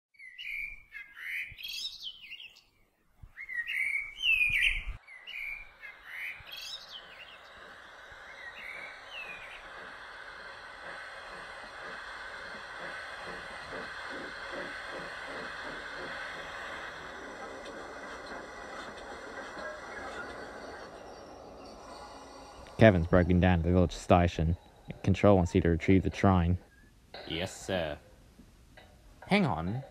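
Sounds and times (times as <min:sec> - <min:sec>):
birds chirping: 0:00.2 - 0:28.3
passing train rushing: 0:05.0 - 0:26.6
train wheels clattering on rails: 0:06.1 - 0:26.4.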